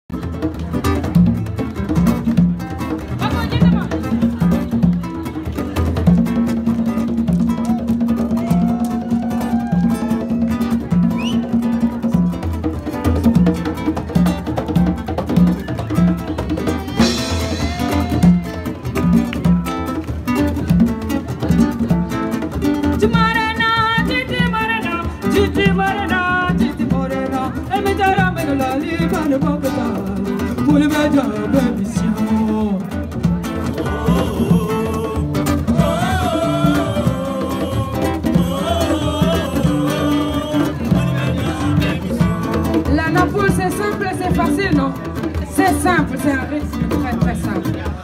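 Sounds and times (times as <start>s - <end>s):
percussion: 0.0s - 48.0s
acoustic guitar: 0.1s - 48.0s
woman singing: 23.0s - 32.8s
repeated bass line: 33.2s - 45.0s.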